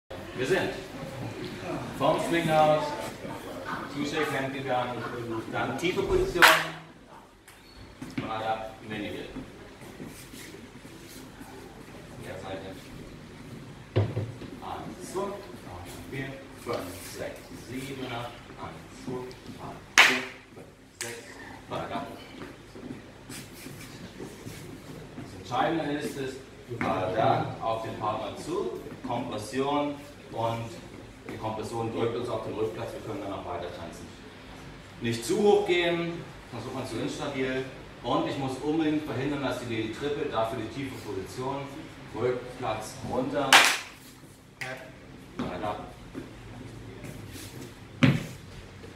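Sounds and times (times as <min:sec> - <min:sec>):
shoes brushing scrapes: 0:09.9 - 0:11.4.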